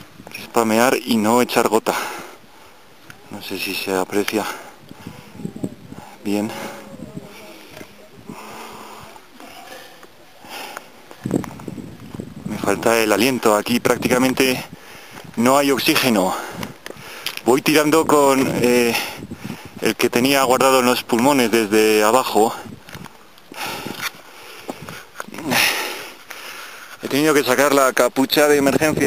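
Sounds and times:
man breathing hard: 1.9s - 3.0s, 4.4s - 11.3s, 14.7s - 15.3s, 16.3s - 17.4s, 18.9s - 19.8s, 23.5s - 26.9s
voiced gasp and heavy exhale: 4.4s - 11.3s, 23.5s - 27.0s.

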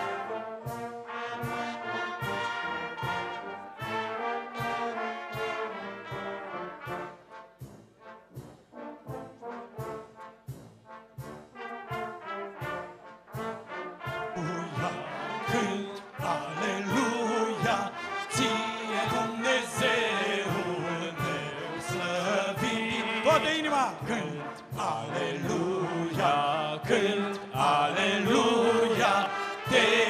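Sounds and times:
orchestra with brass section: 0.0s - 30.0s.

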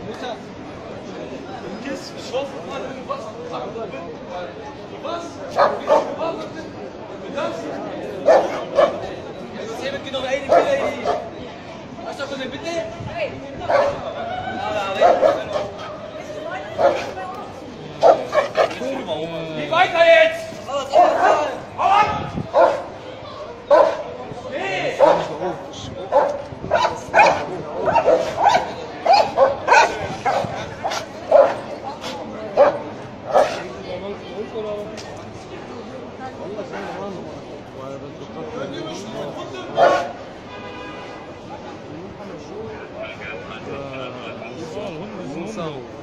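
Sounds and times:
people talking: 0.0s - 40.2s, 41.4s - 46.0s
dog barking: 5.6s - 6.2s, 8.2s - 9.0s, 10.5s - 11.3s, 13.7s - 14.0s, 15.0s - 15.7s, 16.8s - 17.1s, 18.0s - 18.8s, 22.5s - 22.9s, 23.7s - 24.1s, 25.0s - 25.3s, 26.1s - 31.6s, 32.6s - 33.6s, 39.8s - 40.2s.

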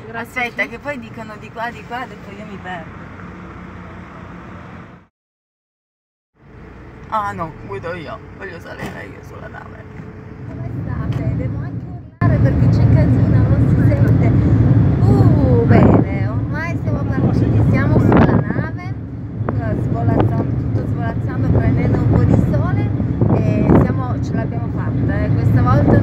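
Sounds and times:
woman talking: 0.0s - 2.9s, 10.5s - 26.0s
car engine hum: 0.0s - 5.1s, 6.4s - 26.0s
ferry low rumble: 6.4s - 26.0s.

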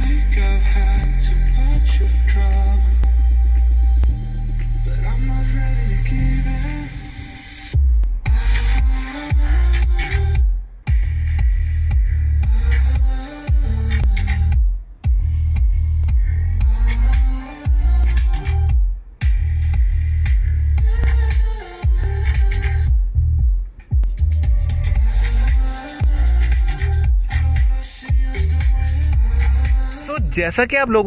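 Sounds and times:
electronic dance music in car: 0.0s - 31.0s.

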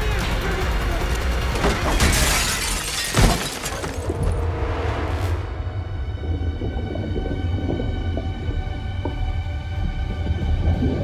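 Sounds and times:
glass shattering: 1.8s - 4.2s
steady low rumble: 4.1s - 11.0s.

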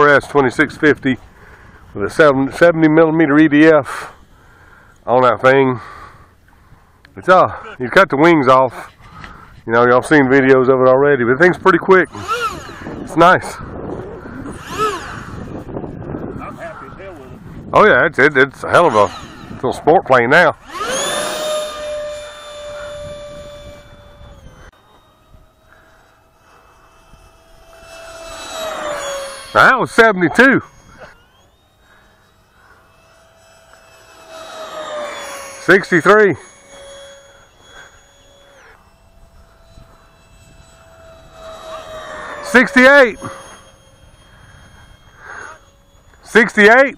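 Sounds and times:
electric ducted fan revving: 0.0s - 46.9s.

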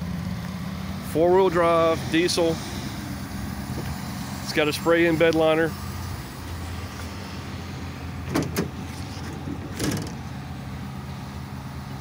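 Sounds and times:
diesel truck engine idling: 0.0s - 12.0s
tailgate knock: 8.3s - 8.8s, 9.4s - 10.2s
tailgate latch clicks: 8.3s - 8.8s, 9.7s - 10.2s.

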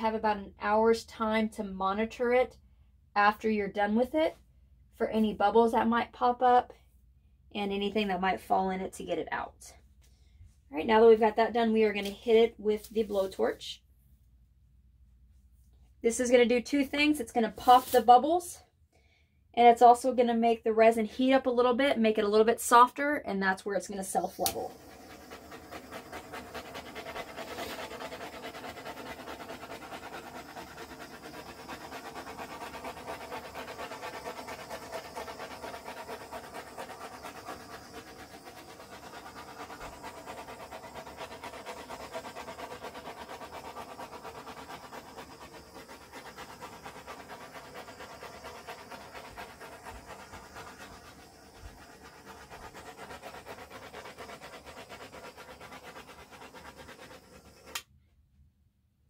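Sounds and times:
butane torch burning: 24.3s - 57.8s.

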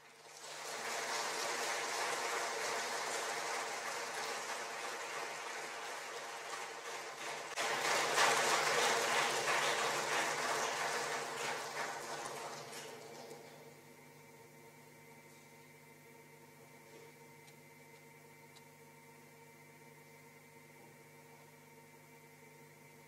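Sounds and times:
audience applauding: 0.0s - 13.4s.

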